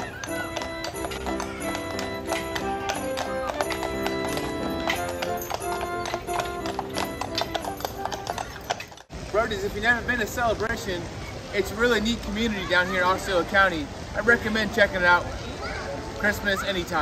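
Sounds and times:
christmas music playing: 0:00.0 - 0:09.0
horse hooves clip-clopping on asphalt: 0:00.0 - 0:09.1.

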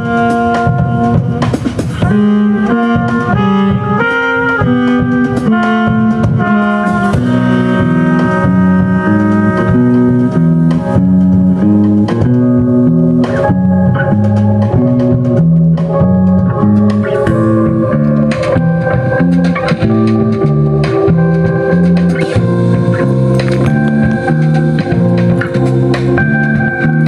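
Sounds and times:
trumpet: 0:00.0 - 0:11.3
saxophone: 0:00.0 - 0:12.5
drum kit: 0:00.0 - 0:27.0
electric bass guitar: 0:00.0 - 0:27.0
electric keyboard: 0:00.0 - 0:27.0.

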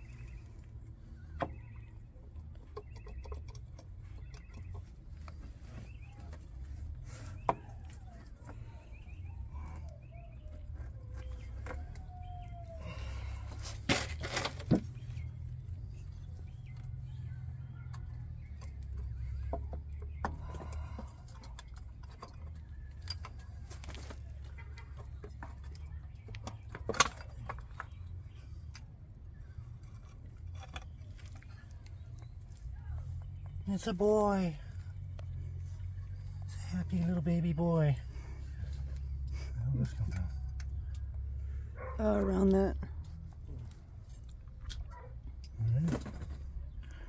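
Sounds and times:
bird calling: 0:07.1 - 0:13.6.

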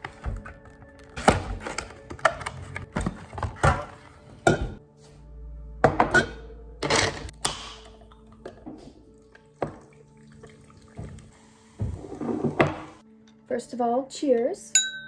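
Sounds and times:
soft background music: 0:00.0 - 0:15.0.

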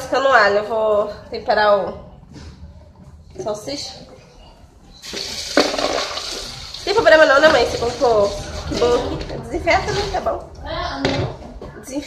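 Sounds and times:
tap water running into sink: 0:05.0 - 0:08.7.

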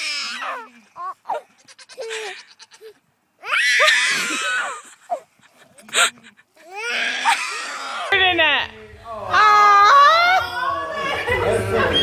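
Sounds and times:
baby goat bleating: 0:00.0 - 0:04.8.

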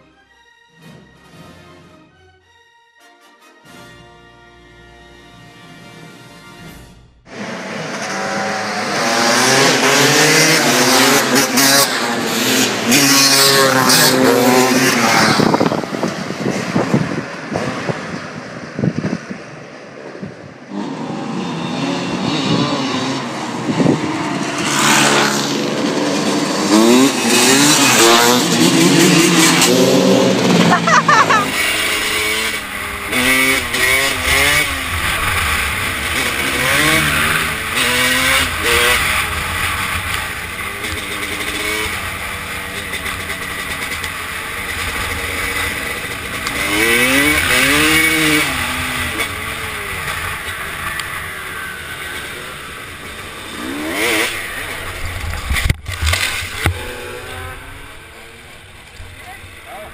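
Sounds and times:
dirt bike engines revving: 0:06.7 - 0:59.9
wind noise: 0:14.0 - 0:31.4, 0:54.8 - 0:57.2.

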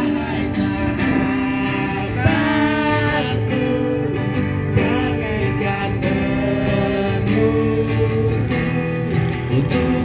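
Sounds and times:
acoustic guitar: 0:00.0 - 0:10.0
people singing: 0:00.0 - 0:10.0.

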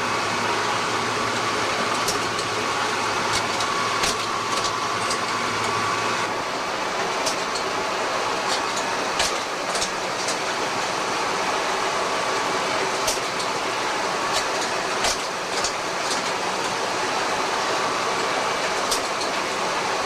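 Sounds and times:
photocopier whirring: 0:00.0 - 0:20.0.

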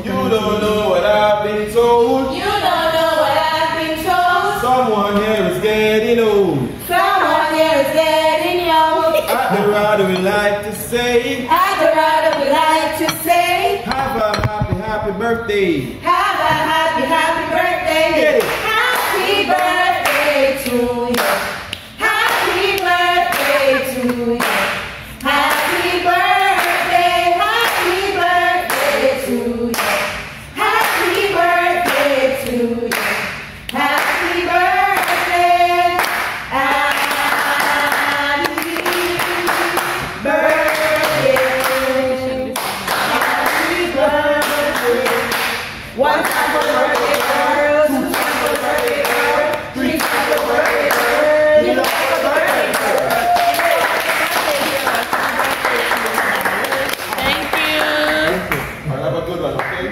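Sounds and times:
group singing a birthday song: 0:00.0 - 0:58.8
hand-clapping: 0:18.4 - 0:24.8, 0:29.7 - 0:31.2, 0:31.8 - 0:34.2, 0:36.0 - 0:41.9, 0:48.1 - 0:51.2, 0:51.8 - 0:58.8.

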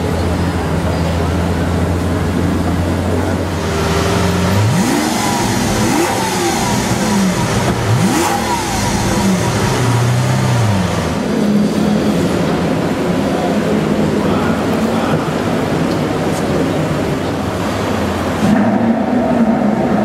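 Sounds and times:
car engine revving: 0:00.0 - 0:14.8, 0:17.0 - 0:20.0.

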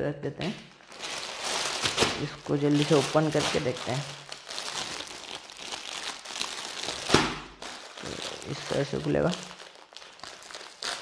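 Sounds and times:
plastic packaging crinkling: 0:00.4 - 0:11.0.

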